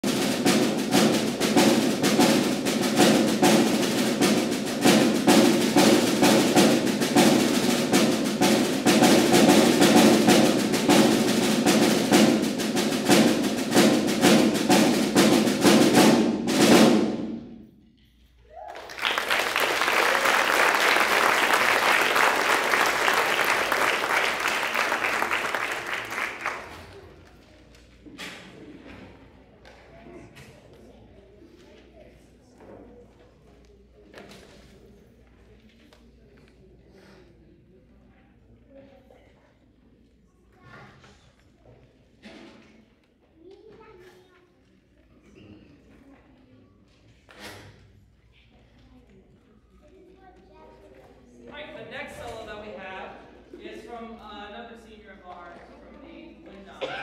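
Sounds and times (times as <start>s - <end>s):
percussion ensemble drumming: 0.0s - 17.6s, 18.9s - 26.8s
audience applauding: 18.6s - 27.4s.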